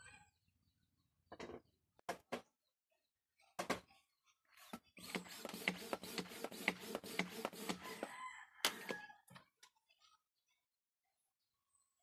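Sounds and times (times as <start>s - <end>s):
rooster crowing: 7.8s - 9.3s.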